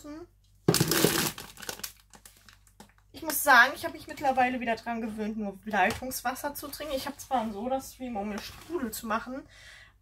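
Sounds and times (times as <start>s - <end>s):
plastic shrink-wrap crinkling: 0.7s - 3.1s.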